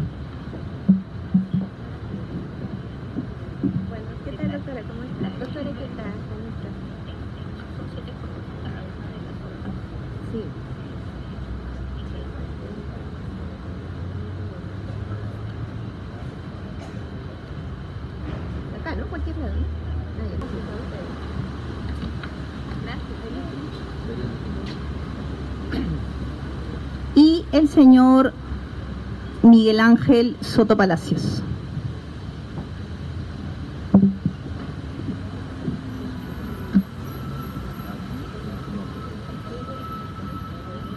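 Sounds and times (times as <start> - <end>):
steady low rumble: 0.0 - 36.9
faint murmured voices: 0.9 - 27.2, 34.0 - 40.9
small knocks: 33.9 - 34.4.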